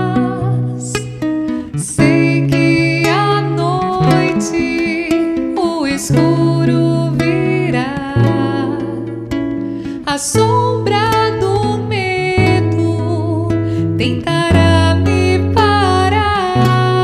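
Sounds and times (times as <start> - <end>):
acoustic guitar: 0.0 - 17.0
woman singing: 0.0 - 17.0.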